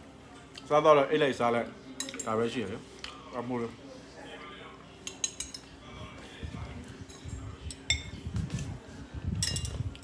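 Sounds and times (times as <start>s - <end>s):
faint background voice: 2.8s - 10.0s
chopsticks clinking on bowl: 5.0s - 5.7s, 9.4s - 10.0s.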